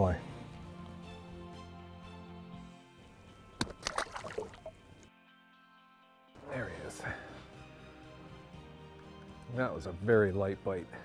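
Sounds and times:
background music: 0.0s - 11.0s
water splash and sloshing: 3.6s - 5.1s.

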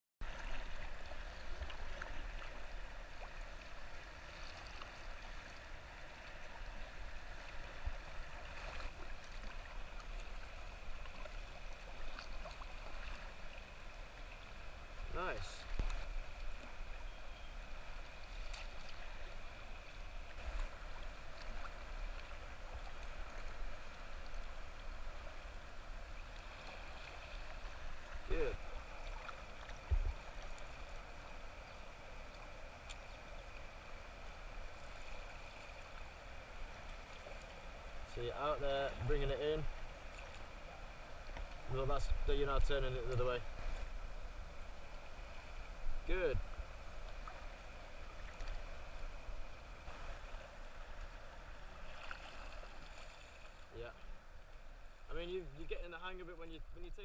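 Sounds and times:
kayak paddle strokes: 0.2s - 38.1s, 39.7s - 54.7s
water lapping against kayak hull: 0.2s - 55.2s.

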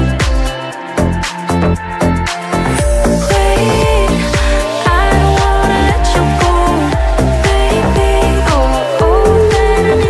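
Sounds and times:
slap house music: 0.0s - 10.0s.

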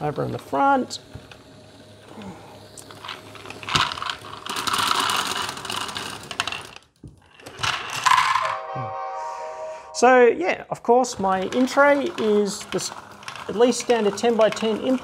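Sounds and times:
plastic balls clattering into tray: 2.8s - 8.6s, 11.2s - 15.0s.

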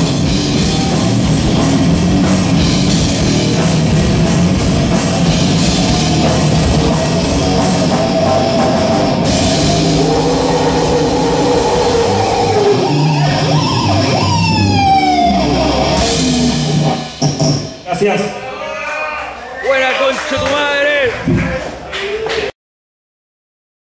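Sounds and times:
guitar pitch slide: 0.0s - 17.7s
heavy metal band playing live: 0.0s - 18.4s
vocalist singing: 5.7s - 13.9s.

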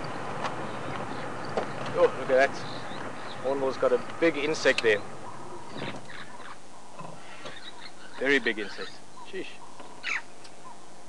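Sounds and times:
outdoor background noise: 0.0s - 11.0s
faint short bird calls: 4.8s - 10.9s.

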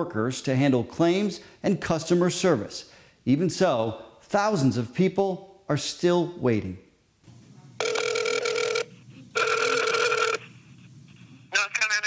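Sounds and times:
warbling phone ringback tone: 7.8s - 10.4s.

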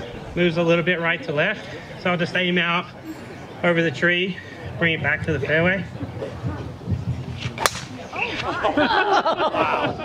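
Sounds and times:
golf driver striking ball: 7.5s - 8.1s.

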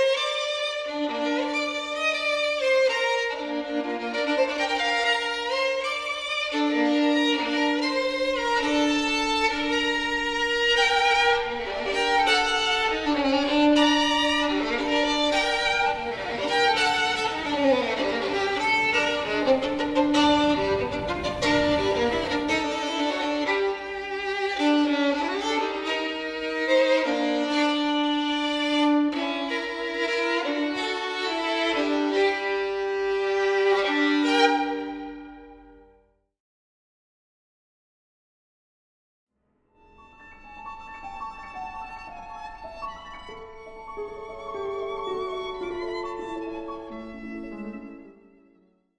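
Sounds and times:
violin melody: 0.0s - 35.9s, 39.8s - 48.9s.

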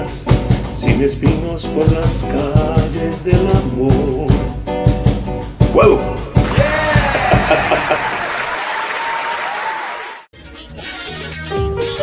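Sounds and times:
applause: 6.4s - 10.3s
cheering voices: 6.4s - 10.3s.

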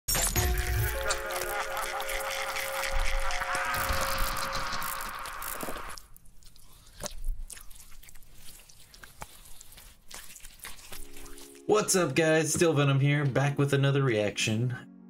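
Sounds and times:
scattered clicks and crackles: 0.2s - 6.2s.

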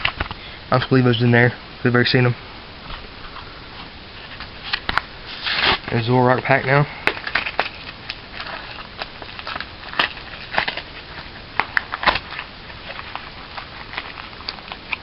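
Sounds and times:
foil wrapper crinkling and tearing: 4.3s - 15.0s.

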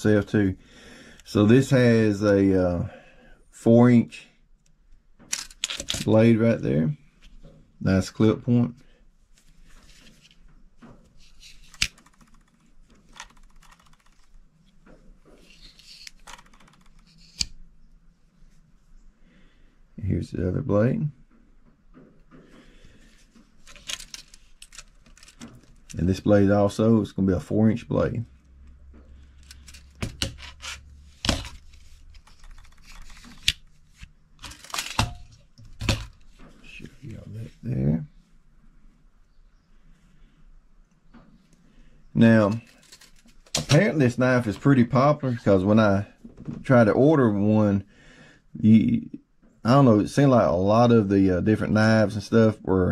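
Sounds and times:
handling and rubbing noise: 9.3s - 17.5s, 28.9s - 37.8s.

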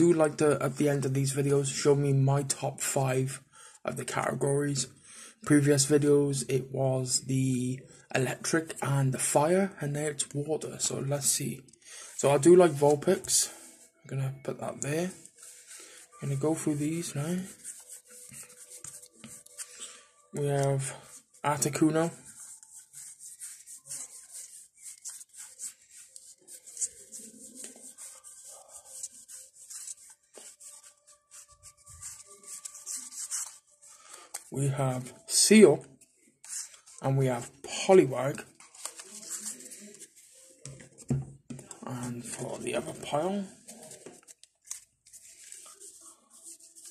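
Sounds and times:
trading cards sliding and clicking: 14.8s - 28.3s
trading cards rubbing together: 14.8s - 34.5s, 36.4s - 37.0s, 38.5s - 41.0s, 41.9s - 46.9s.

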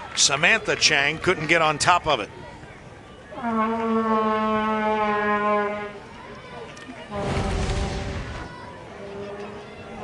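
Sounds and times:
horn long steady note: 3.3s - 6.1s, 7.1s - 10.0s.

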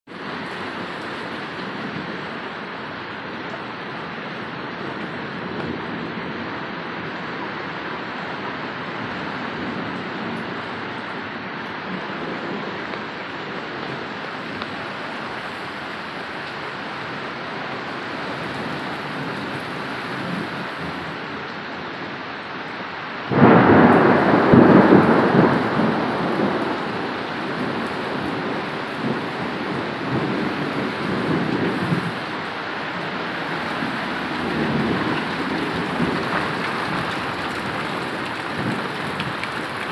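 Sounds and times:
heavy rain on trees: 0.1s - 39.9s
thunderclap rumbling: 3.9s - 21.3s, 23.2s - 39.9s.

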